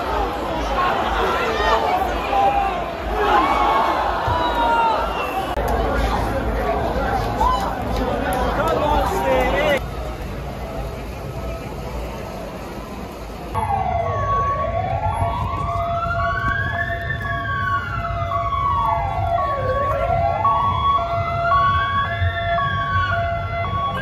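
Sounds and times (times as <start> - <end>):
police siren wailing: 13.6 - 24.0.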